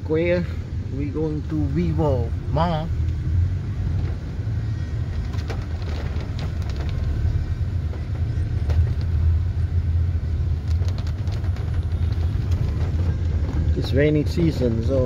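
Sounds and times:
engine and tyres on wet road: 0.0s - 15.0s.

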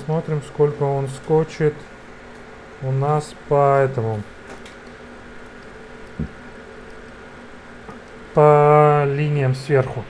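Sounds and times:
cooling fans humming: 0.0s - 10.0s
short low thump: 6.2s - 6.4s.

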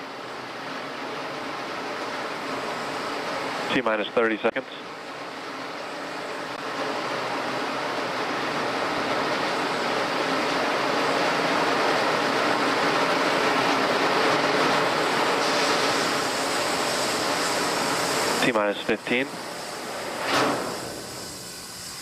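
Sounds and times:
steady rushing noise: 1.1s - 21.0s.

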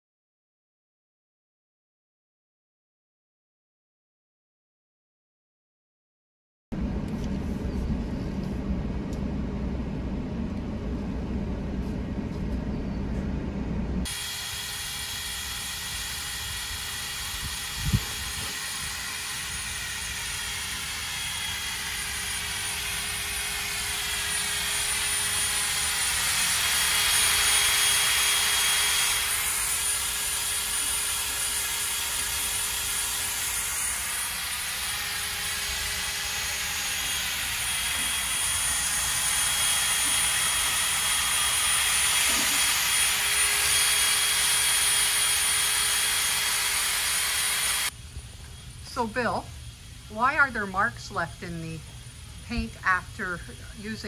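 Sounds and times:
drill grinding: 14.0s - 48.0s.

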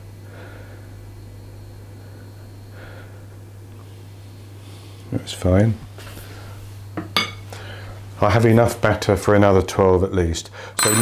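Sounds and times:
low steady hum: 0.0s - 11.0s
metal scoop clinking on glass bowl: 10.8s - 11.0s.

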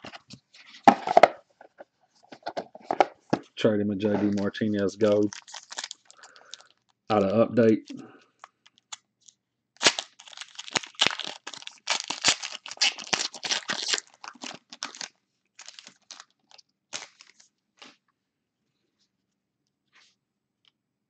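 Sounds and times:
wrapper crinkling and tearing: 4.2s - 6.9s, 8.6s - 17.9s.

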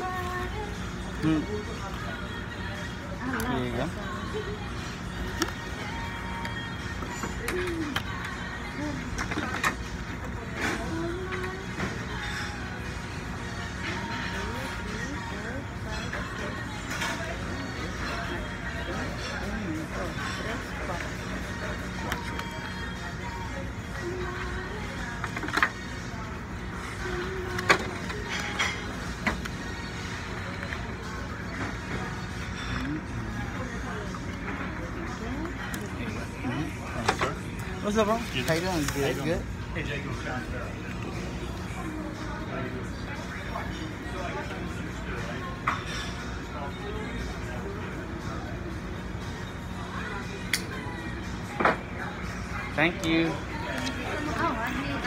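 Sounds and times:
faint music: 0.0s - 55.0s.

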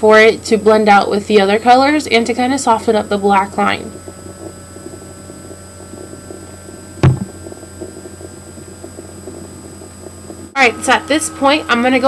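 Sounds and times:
electrical hum: 0.0s - 12.0s
dull knock: 7.0s - 7.4s.

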